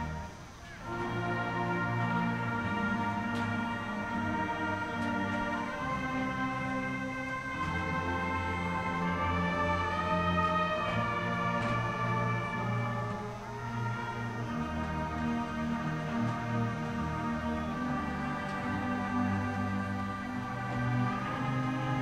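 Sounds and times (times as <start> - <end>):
distant marching band chords: 0.0 - 22.0.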